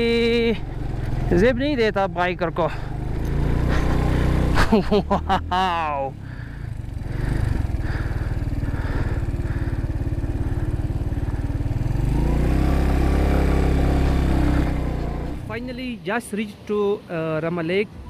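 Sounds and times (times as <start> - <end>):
motorcycle engine running: 0.0 - 15.7.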